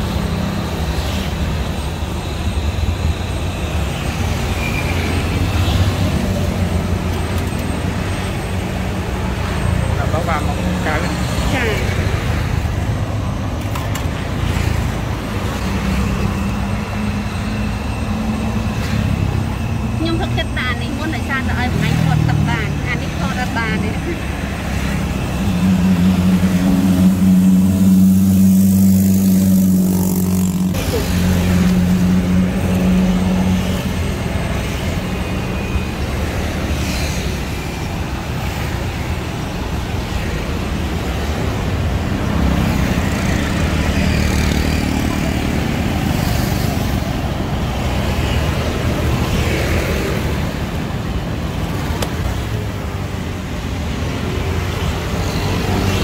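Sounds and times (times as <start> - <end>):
engine hum: 0.0 - 56.0
traffic rumble: 0.0 - 56.0.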